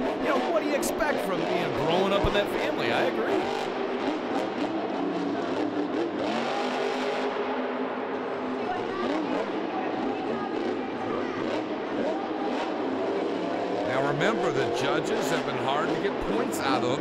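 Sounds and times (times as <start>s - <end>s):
monster truck engine revving: 0.0s - 17.0s
stadium crowd noise: 0.0s - 17.0s.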